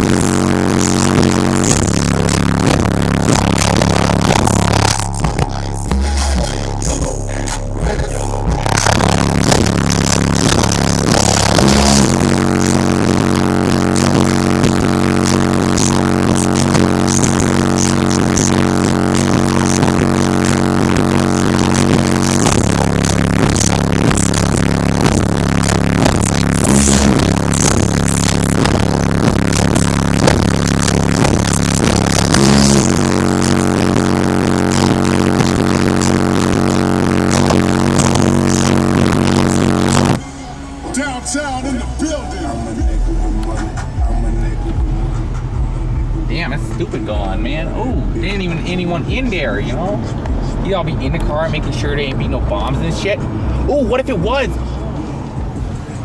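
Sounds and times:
bass-heavy rap music on car stereo: 0.0 - 56.0.

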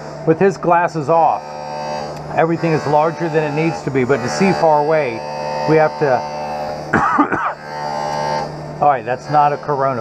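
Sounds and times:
electrical hum: 0.0 - 10.0
man coughing: 6.9 - 7.6.

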